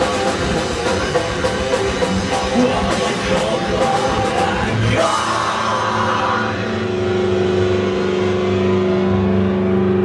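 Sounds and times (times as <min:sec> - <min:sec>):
drum rumble: 0:00.0 - 0:07.8
distorted electric guitar chord: 0:00.0 - 0:10.0.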